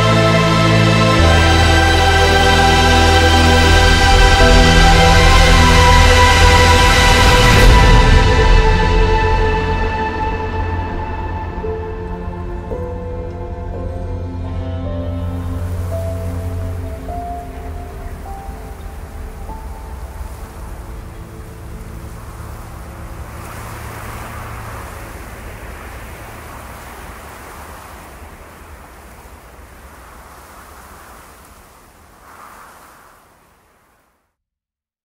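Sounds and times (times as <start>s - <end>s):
sustained music notes: 0.0s - 29.5s
wind-like rushing noise: 15.4s - 34.2s.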